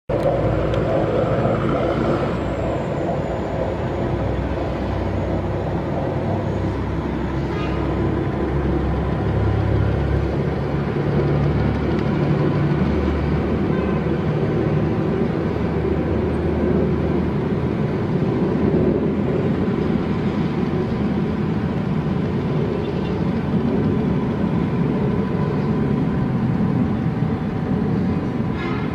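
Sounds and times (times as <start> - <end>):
jet planes rumbling overhead: 0.1 - 28.9.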